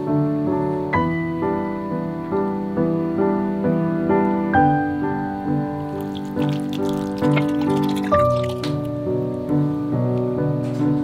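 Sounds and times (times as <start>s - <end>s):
soft piano music: 0.0s - 11.0s
hand kneading wet meat: 5.8s - 8.9s.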